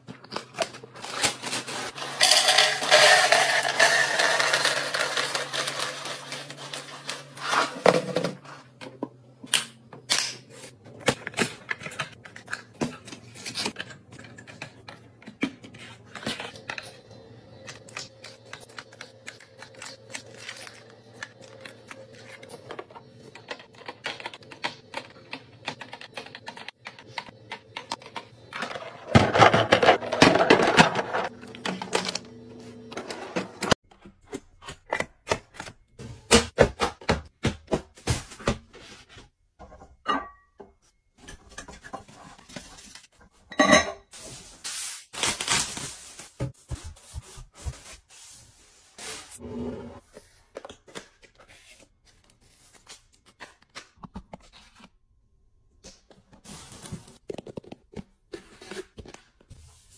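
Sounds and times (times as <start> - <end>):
plastic packaging rustling and clicking: 0.0 - 2.2.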